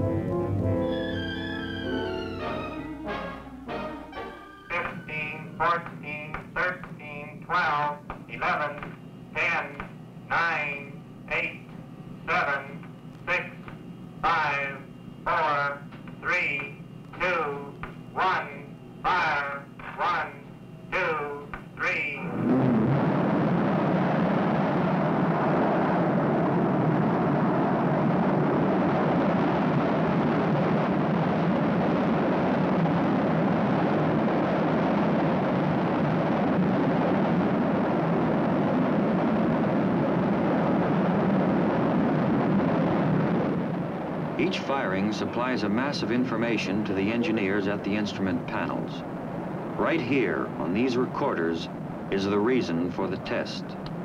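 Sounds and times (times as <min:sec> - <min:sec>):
person counting over microphone: 0:04.7 - 0:22.3
rocket motor roaring: 0:21.1 - 0:45.2.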